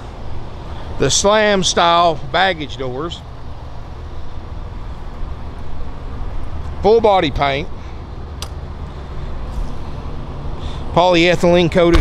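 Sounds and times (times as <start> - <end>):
generator running: 0.0 - 11.9.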